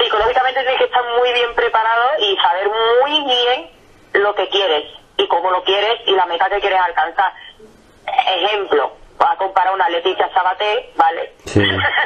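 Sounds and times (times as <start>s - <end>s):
woman talking over telephone: 0.0s - 12.0s.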